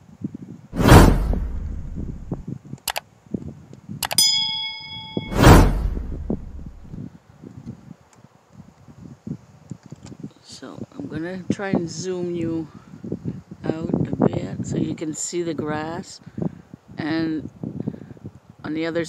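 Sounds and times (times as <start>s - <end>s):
loud whooshing hit: 0.8s - 2.4s, 5.0s - 7.0s
quick clicks: 1.6s - 3.0s
bell-like ding: 4.1s - 7.0s.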